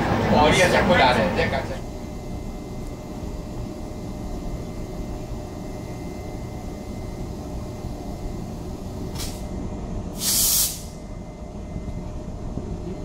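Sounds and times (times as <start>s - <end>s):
locomotive low rumble and whine: 0.0s - 13.0s
compressed air hiss: 9.0s - 9.5s, 10.2s - 11.0s.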